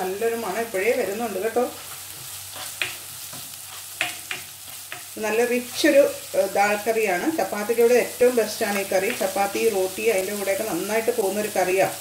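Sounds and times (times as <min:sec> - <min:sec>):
woman talking: 0:00.0 - 0:01.8, 0:05.2 - 0:12.0
onion sizzling in a wok: 0:00.0 - 0:12.0
spatula stirring: 0:01.8 - 0:06.4.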